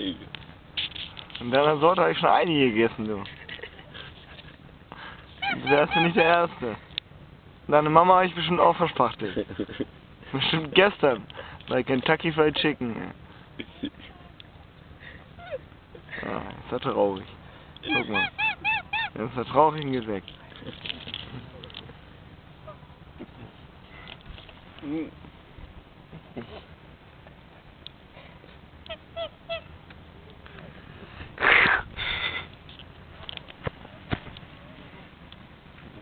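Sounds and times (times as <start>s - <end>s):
goose call falling in pitch: 5.4s - 6.4s
duck calling: 5.4s - 6.5s, 17.8s - 19.2s, 28.9s - 29.7s.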